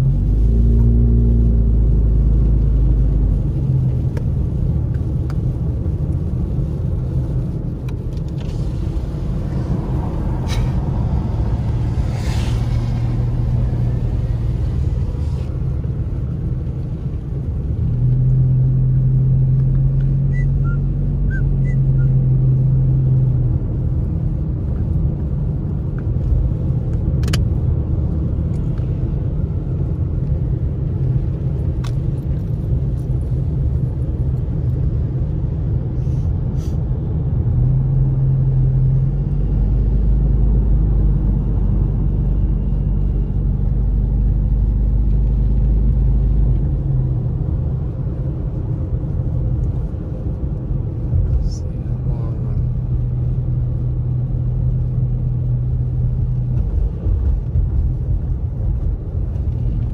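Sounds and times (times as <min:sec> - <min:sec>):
car engine and tyres rumbling: 0:00.0 - 0:59.9.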